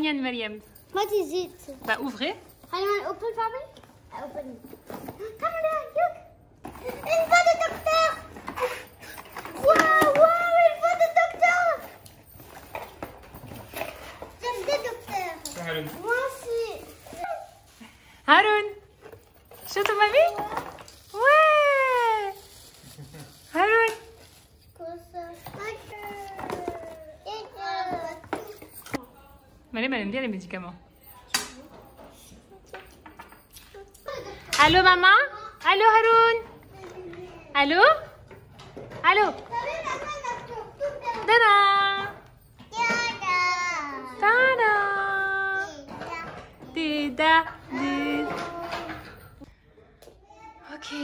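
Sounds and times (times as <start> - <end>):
children talking and calling out: 2.6 - 13.2, 13.8 - 17.7, 24.8 - 29.0, 33.5 - 46.9, 47.5 - 49.5, 50.1 - 51.0.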